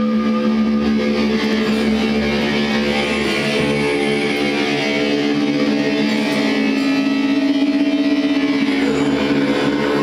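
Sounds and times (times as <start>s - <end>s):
sustained musical drone: 0.0s - 10.0s.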